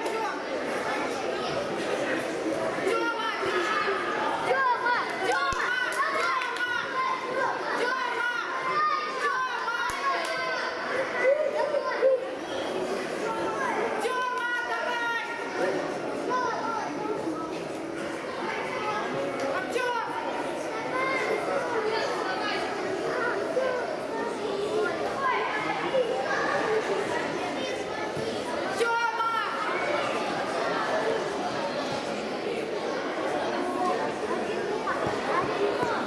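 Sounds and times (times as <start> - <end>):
chatter of many voices: 0.0 - 36.0
children shouting: 2.8 - 17.2.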